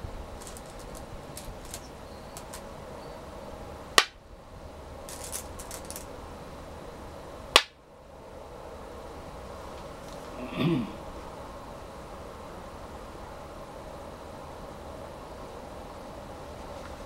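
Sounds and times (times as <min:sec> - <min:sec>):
go stones clicking on wooden board: 0:00.4 - 0:02.6, 0:05.1 - 0:06.0
stones clattering in bowl: 0:00.4 - 0:02.6, 0:05.1 - 0:06.1.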